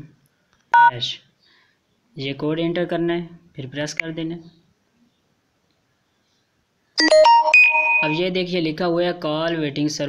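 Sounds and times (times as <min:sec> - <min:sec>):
phone keypad tone: 0:07.0 - 0:08.2.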